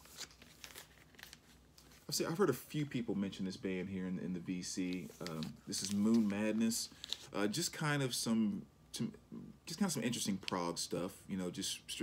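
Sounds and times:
plastic sleeve crinkling: 0:00.0 - 0:02.2, 0:04.9 - 0:07.4.

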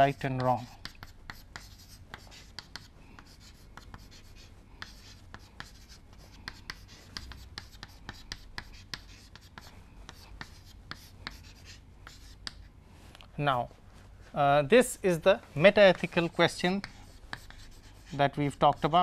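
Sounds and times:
chalk writing on chalkboard: 0:00.0 - 0:12.7, 0:15.8 - 0:19.0.

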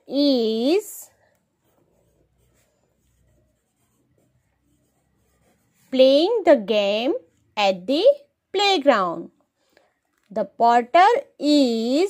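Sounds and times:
pencil scratching on paper: 0:00.0 - 0:07.6.

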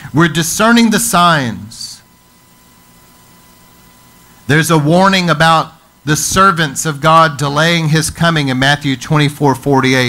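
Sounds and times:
faint high-pitched whine: 0:00.0 - 0:10.0
low hiss of recording noise: 0:00.0 - 0:10.0.

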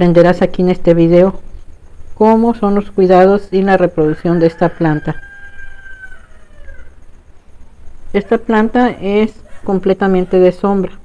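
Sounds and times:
distant rooster crowing: 0:03.6 - 0:11.0.

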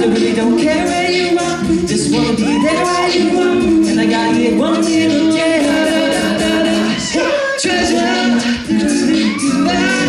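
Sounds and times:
male a cappella group singing: 0:00.0 - 0:10.0.

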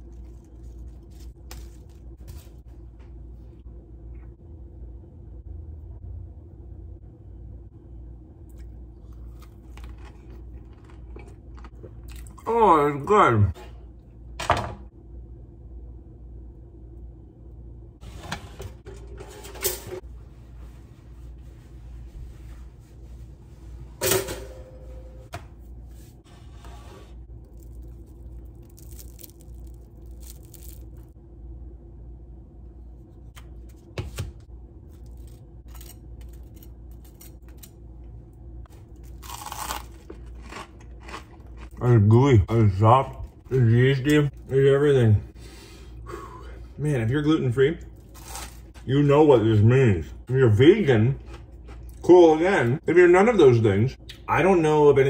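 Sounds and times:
chewing and tearing crusty bread: 0:00.0 - 0:02.6, 0:08.5 - 0:12.4, 0:27.3 - 0:31.1, 0:34.8 - 0:42.0, 0:47.9 - 0:48.8
faint low hum: 0:00.0 - 0:55.0.

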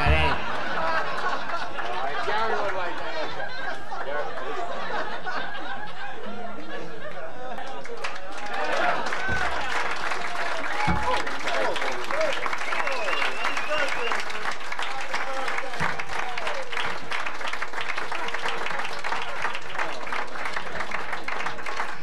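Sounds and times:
voices calling out: 0:00.0 - 0:01.0
audience applauding: 0:00.0 - 0:05.4, 0:07.0 - 0:22.0.

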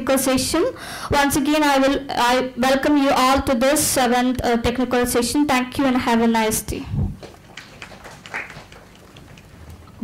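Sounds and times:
hall room noise: 0:06.2 - 0:10.0.

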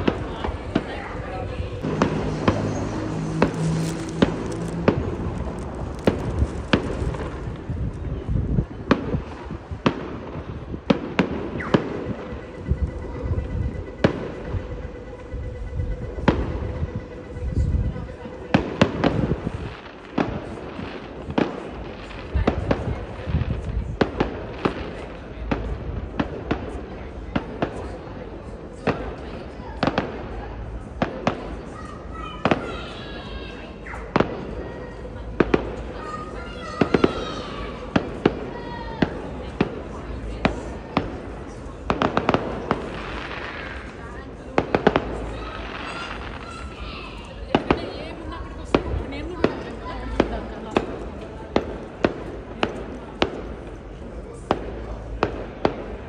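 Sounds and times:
fireworks bursting with sharp bangs: 0:00.0 - 0:56.0.

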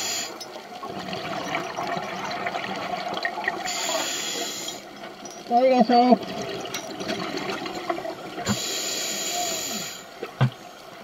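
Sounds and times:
diver's regulator hiss: 0:00.0 - 0:00.4, 0:03.6 - 0:04.9, 0:08.5 - 0:10.1
underwater crackling rushing water: 0:00.0 - 0:11.0.

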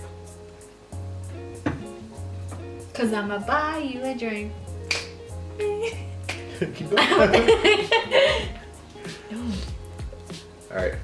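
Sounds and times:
background music with deep bass: 0:00.0 - 0:11.0.

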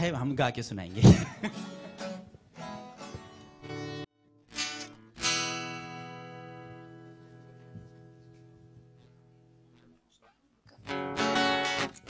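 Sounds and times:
acoustic guitar notes: 0:00.9 - 0:12.0
strummed guitar chord: 0:01.4 - 0:08.0.

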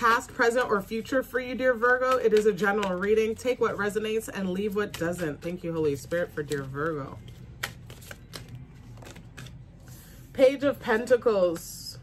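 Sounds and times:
cards being shuffled: 0:02.0 - 0:03.2, 0:04.5 - 0:10.1.

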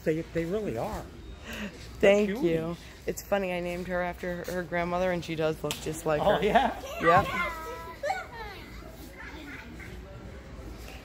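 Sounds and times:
faint voices of children playing: 0:06.6 - 0:11.0.

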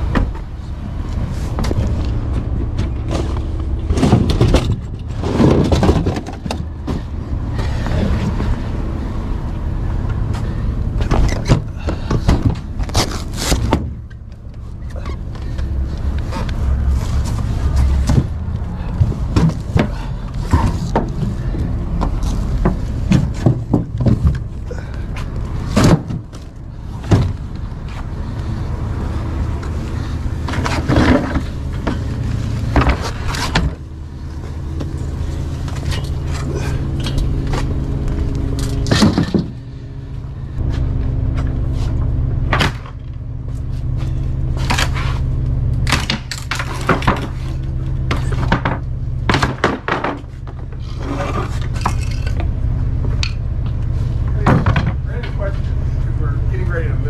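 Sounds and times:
steady low rumble: 0:00.0 - 0:57.0.

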